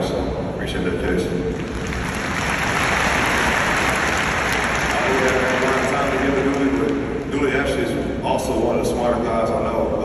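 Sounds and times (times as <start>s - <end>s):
crowd applauding: 1.5s - 7.2s.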